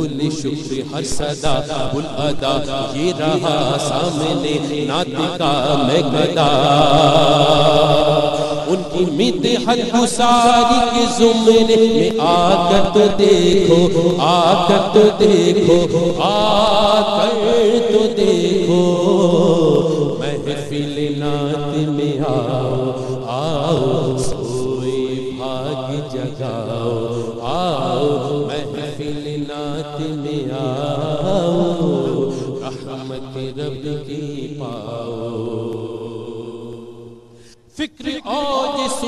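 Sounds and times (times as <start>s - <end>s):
man singing unaccompanied: 0.0s - 39.0s.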